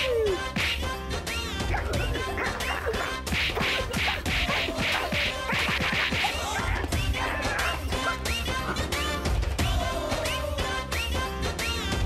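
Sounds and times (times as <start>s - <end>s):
comic background music: 0.0s - 12.0s.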